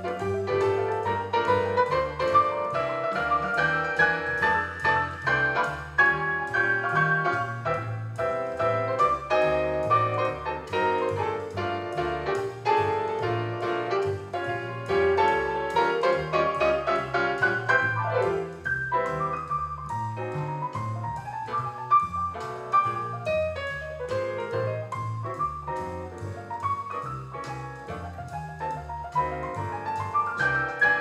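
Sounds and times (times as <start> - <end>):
solo grand piano: 0.0 - 31.0.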